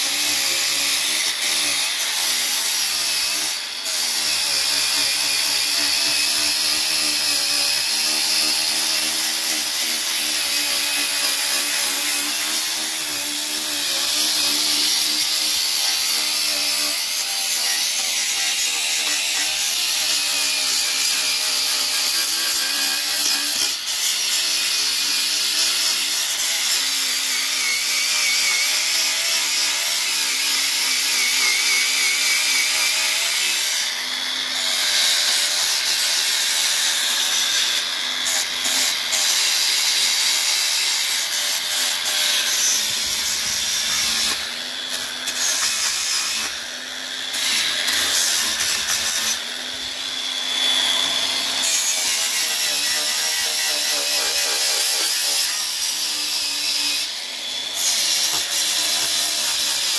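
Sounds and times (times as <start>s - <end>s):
angle grinder sanding metal: 0.0s - 59.9s.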